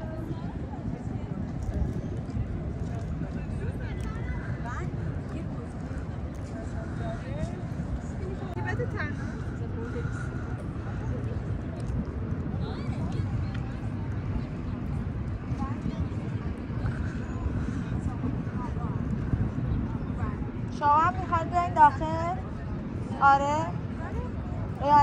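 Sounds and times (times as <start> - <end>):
faint voices of passers-by: 0.0 - 25.0
low city rumble: 0.0 - 25.0.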